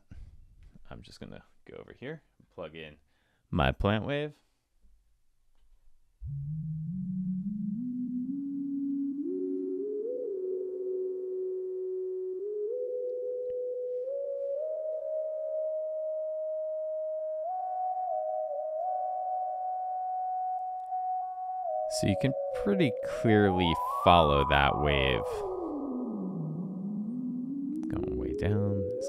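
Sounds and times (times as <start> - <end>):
sine-wave synth tone: 6.2 - 29.0.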